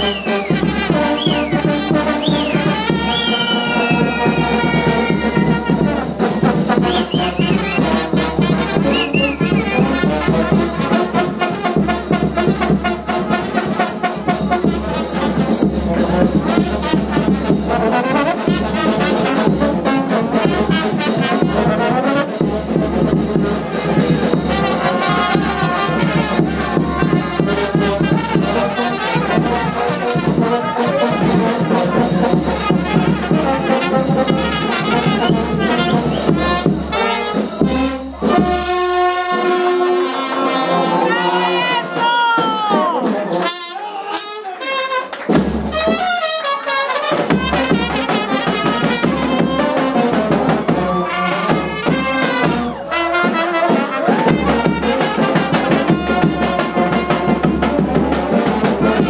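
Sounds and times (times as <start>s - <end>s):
bass drum beat: 0.0s - 17.9s, 20.4s - 30.6s
trumpets and horns playing: 0.0s - 59.0s.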